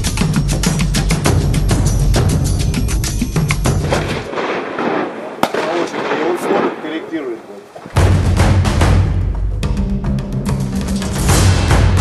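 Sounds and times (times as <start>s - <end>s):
gunshot: 3.9s - 7.2s.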